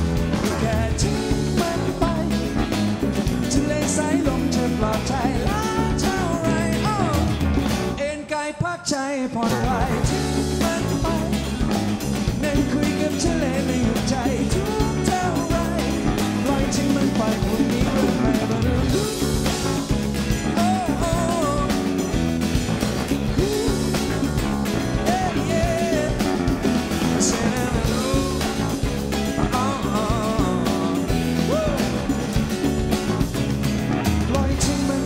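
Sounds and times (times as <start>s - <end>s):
live pop-rock band playing: 0.0s - 35.0s.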